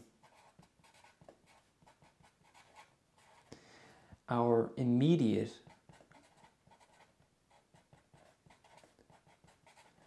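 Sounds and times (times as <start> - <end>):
felt-tip marker writing: 5.6 - 10.0.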